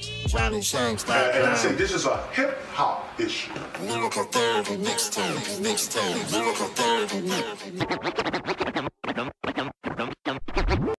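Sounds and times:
turntable scratching vocal sample: 0.0 - 11.0.

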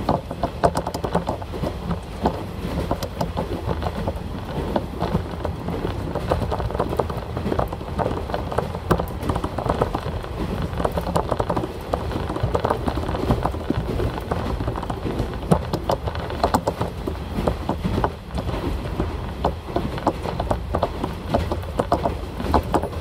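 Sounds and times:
wheels clattering and fittings rattling: 0.0 - 23.0.

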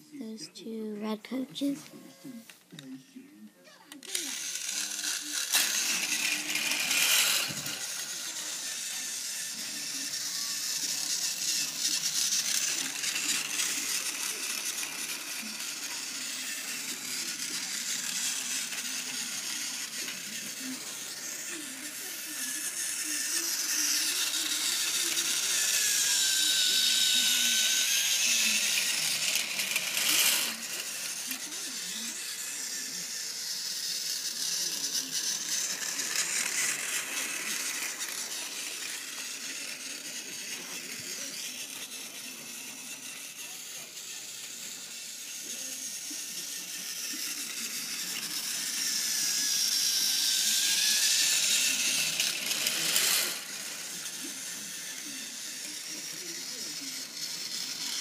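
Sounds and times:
toy train motor whirring: 0.1 - 58.0.

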